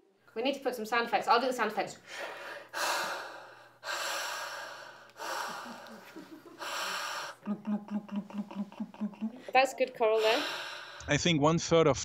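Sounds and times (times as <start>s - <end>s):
mouth bubbling pulses: 6.7s - 9.5s.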